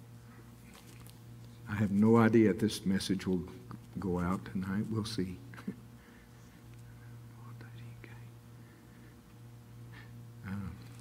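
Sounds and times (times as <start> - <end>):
whispered voices: 6.8 - 8.4.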